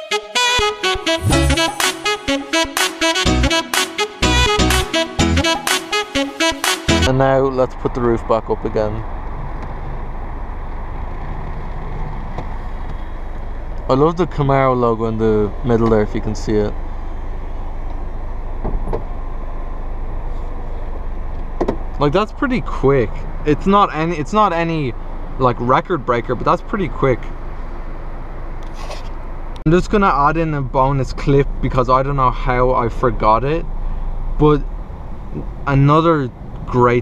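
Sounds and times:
low engine hum: 7.0 - 37.0.

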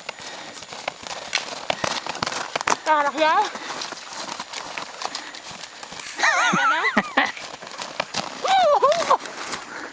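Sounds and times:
snowshoe steps crunching in snow: 0.0 - 9.9.

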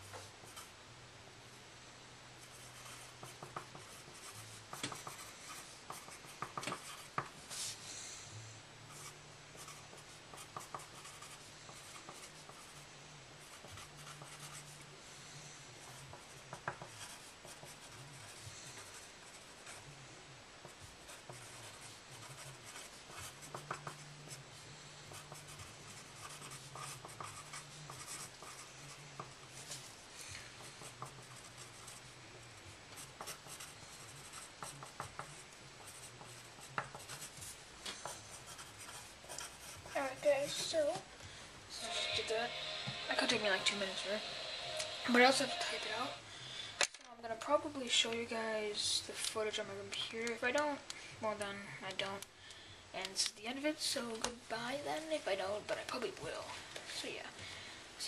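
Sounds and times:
faint low hum: 0.0 - 58.0
pencil writing on paper: 2.4 - 7.3, 8.9 - 12.8, 13.4 - 14.8, 15.8 - 19.8, 20.6 - 24.4, 25.0 - 29.7, 30.4 - 32.1, 33.0 - 40.9.

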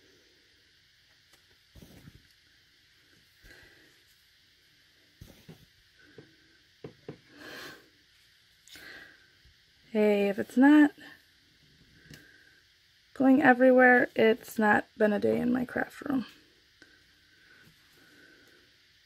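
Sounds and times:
soft breaths: 1.7 - 13.1, 16.2 - 19.0.

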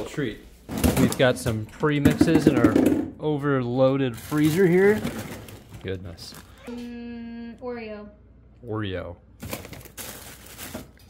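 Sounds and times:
plastic containers knocking: 0.7 - 3.2
plastic freezer bags rustling: 3.6 - 6.7, 9.4 - 11.0.

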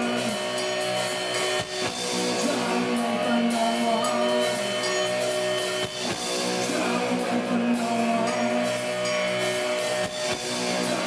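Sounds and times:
drums and cymbals: 0.0 - 11.0
electric guitar chords: 0.0 - 11.0.

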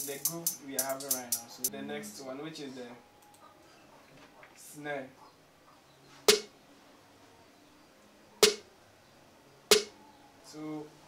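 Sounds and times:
programmed snare hits: 6.3 - 6.5, 8.4 - 8.6, 9.7 - 9.9.

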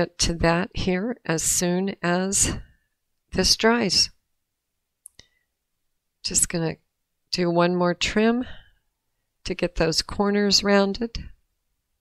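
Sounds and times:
faint clicks of craft tools: 5.0 - 5.4.

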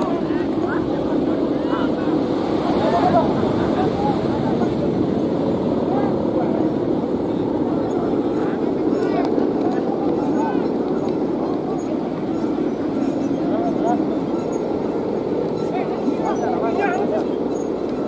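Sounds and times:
crowd calling and shouting: 0.0 - 18.0
kites humming in wind: 0.0 - 18.0.

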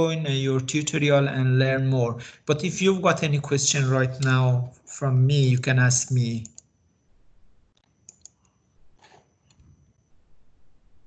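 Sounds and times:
faint computer clicks: 5.5 - 6.7, 7.7 - 9.7.

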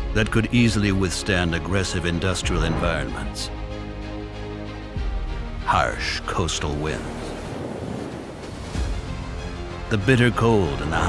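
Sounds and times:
churning sea water and surf: 5.7 - 9.8.

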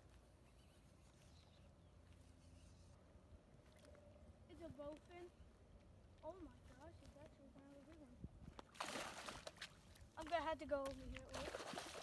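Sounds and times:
fish thrashing and splashing: 8.8 - 9.8, 11.3 - 12.0.

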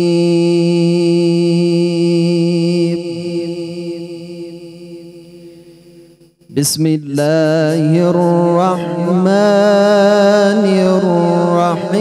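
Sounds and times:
man reciting with held note: 0.0 - 5.6, 6.5 - 12.0
reverberant echo: 0.0 - 12.0.

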